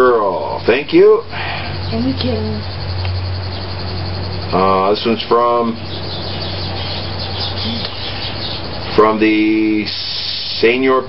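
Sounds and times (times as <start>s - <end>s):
low hum: 0.0s - 11.0s
small birds chirping: 0.0s - 11.0s
background hiss: 7.3s - 11.0s.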